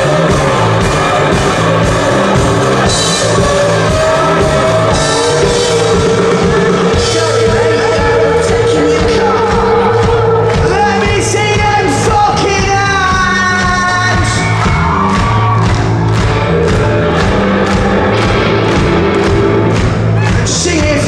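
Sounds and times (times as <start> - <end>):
man singing: 0.0 - 14.6, 20.2 - 21.0
electric guitars: 0.0 - 21.0
steady drum beat: 0.0 - 21.0.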